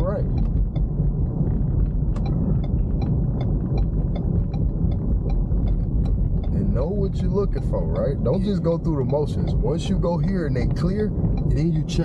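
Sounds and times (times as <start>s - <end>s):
turn signal clicking: 0.0s - 7.2s, 8.4s - 11.6s
road and tyre rumble: 0.0s - 12.0s.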